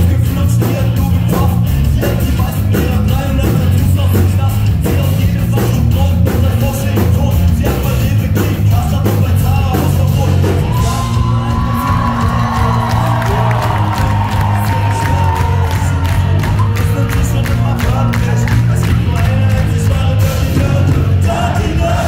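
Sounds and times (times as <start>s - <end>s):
punk rock band playing live: 0.0s - 22.0s
crowd whooping and shouting: 10.4s - 18.8s.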